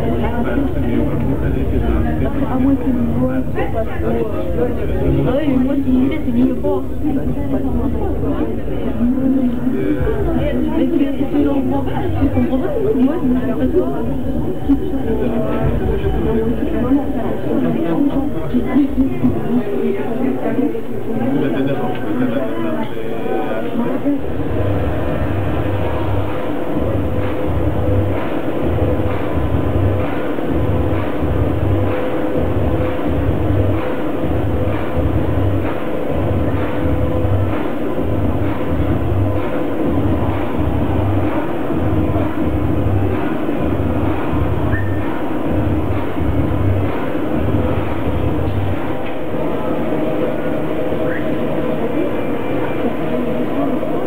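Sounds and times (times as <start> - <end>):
low rumbling pulse: 0.0 - 19.7, 24.2 - 53.6
steady hum: 0.0 - 54.0.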